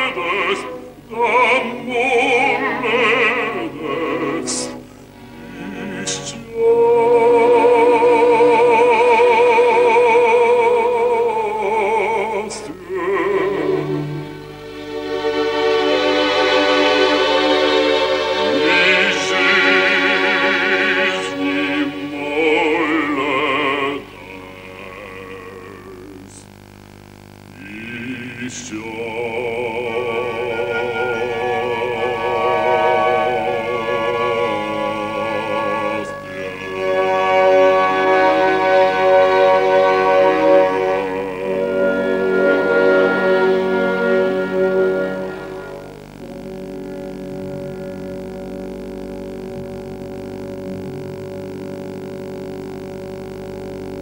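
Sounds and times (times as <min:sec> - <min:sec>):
orchestra holding soft chords: 0:00.0 - 0:26.3, 0:27.5 - 0:54.0
person singing: 0:00.0 - 0:26.6, 0:27.5 - 0:54.0.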